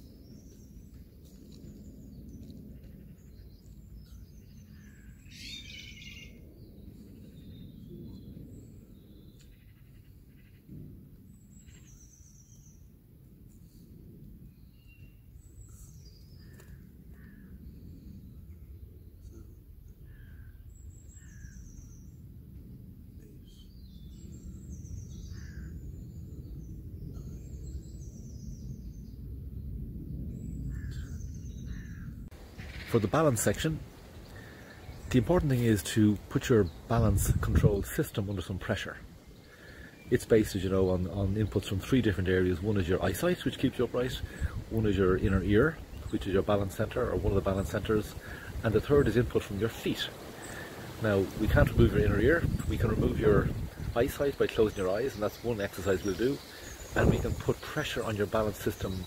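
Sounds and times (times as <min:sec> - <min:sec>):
birds chirping and singing: 0:00.0 - 0:10.7, 0:11.4 - 0:12.9, 0:14.5 - 0:22.2, 0:23.2 - 0:59.0
low outdoor rumble: 0:05.9 - 0:59.0.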